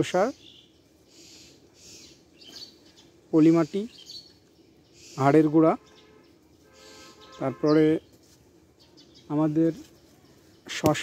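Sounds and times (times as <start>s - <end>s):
faint bird chirps: 0.0s - 8.2s.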